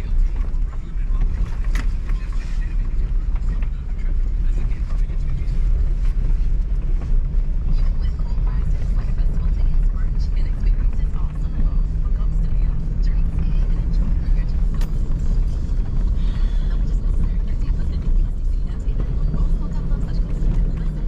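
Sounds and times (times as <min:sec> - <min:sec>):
truck engine and road rumble: 0:00.0 - 0:21.0.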